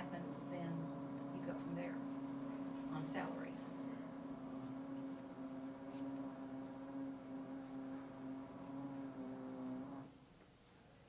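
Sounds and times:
machine humming: 0.0s - 10.2s.

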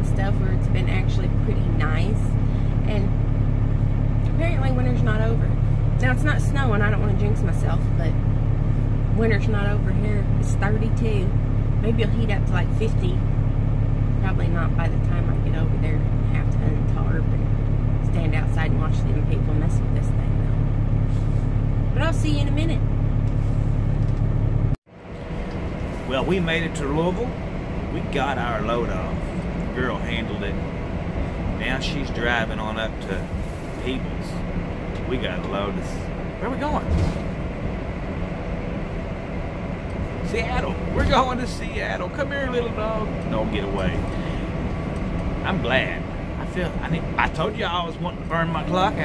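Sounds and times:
woman talking: 0.0s - 3.2s, 4.2s - 8.2s, 9.1s - 13.2s, 14.2s - 20.6s, 21.9s - 22.9s
diesel engine drone in cab: 0.0s - 49.0s
road noise: 0.0s - 49.0s.

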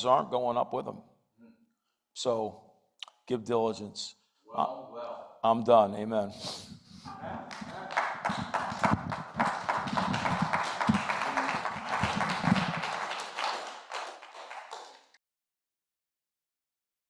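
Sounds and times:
small group applauding: 7.1s - 15.2s.

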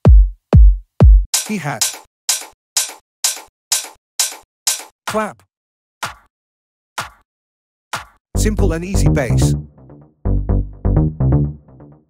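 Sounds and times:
electronic hi-hat hits: 0.1s - 4.9s.

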